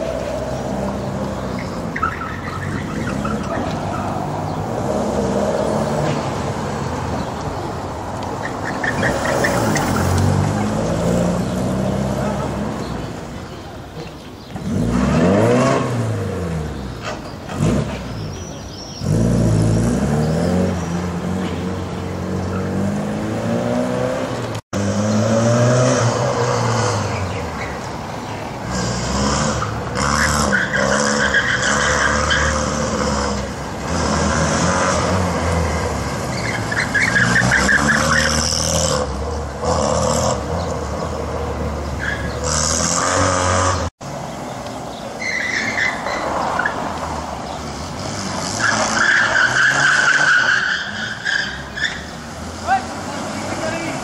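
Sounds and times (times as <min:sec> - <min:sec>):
tyres squealing: 0:00.0 - 0:06.3, 0:26.5 - 0:40.8, 0:41.9 - 0:43.9, 0:45.0 - 0:54.0
car engines revving: 0:00.0 - 0:54.0.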